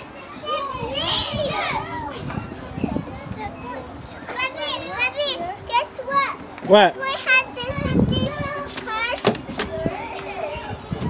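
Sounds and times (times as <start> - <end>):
children calling out at play: 0.0 - 11.0.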